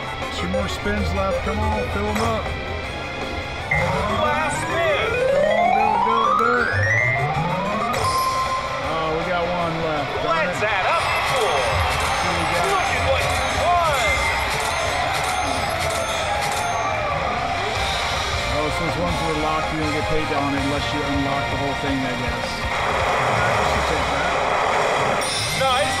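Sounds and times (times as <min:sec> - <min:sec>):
slot machine win music and jingles: 0:00.1 - 0:09.7, 0:10.3 - 0:23.2, 0:25.1 - 0:26.0
rising electronic tone: 0:03.7 - 0:08.9.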